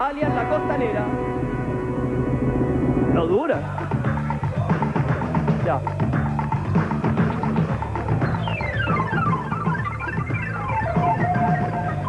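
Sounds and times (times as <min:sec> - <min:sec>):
held chord over pulsing bass: 0:00.0 - 0:12.0.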